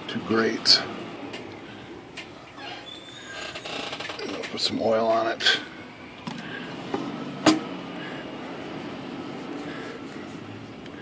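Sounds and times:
steady low background noise: 0:00.0 - 0:11.0.

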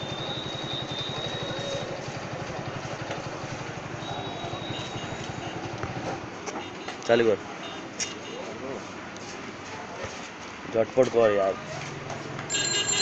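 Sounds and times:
small engine idling: 0:00.0 - 0:06.3.

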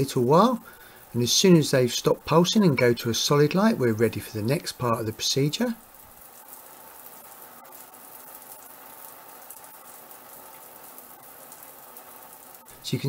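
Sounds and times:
water spraying from shower head: 0:00.0 - 0:13.0.

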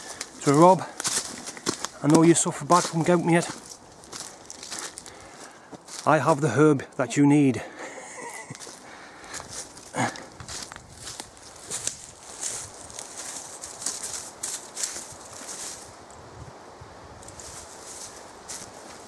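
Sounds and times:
footsteps crunching dry leaves: 0:00.0 - 0:16.0, 0:17.3 - 0:19.0.

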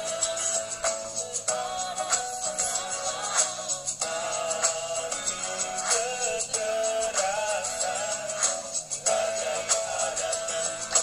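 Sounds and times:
backing track with steady beat: 0:00.0 - 0:11.0
people singing pop song: 0:00.0 - 0:11.0.

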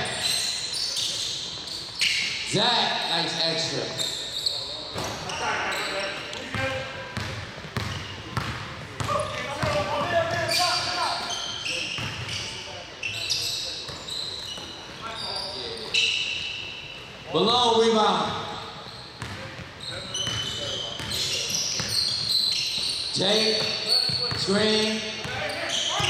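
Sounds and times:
sneaker squeaks: 0:00.0 - 0:17.3, 0:18.2 - 0:26.0.

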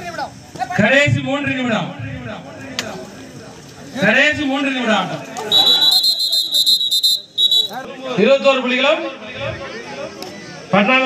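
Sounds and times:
referee's whistle blasts: 0:05.5 - 0:07.8.

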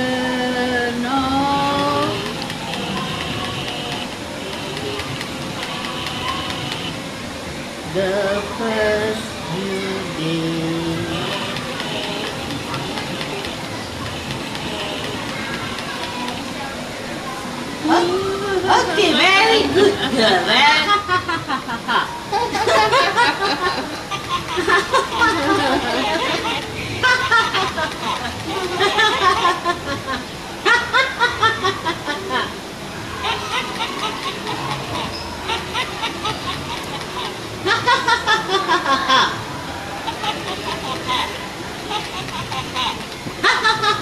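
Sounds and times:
toy motor whirring and rattling: 0:01.6 - 0:07.0, 0:11.0 - 0:16.6, 0:24.1 - 0:29.6, 0:33.3 - 0:37.4, 0:40.1 - 0:44.0
high-pitched laughter: 0:19.4 - 0:44.0.

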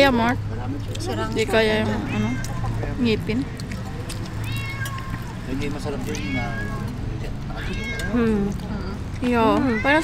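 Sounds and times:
cat meowing: 0:02.0 - 0:02.6, 0:04.4 - 0:08.3.

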